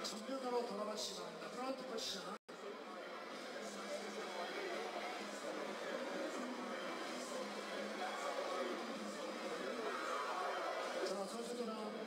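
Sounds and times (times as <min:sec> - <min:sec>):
faint music: 0:00.0 - 0:12.0.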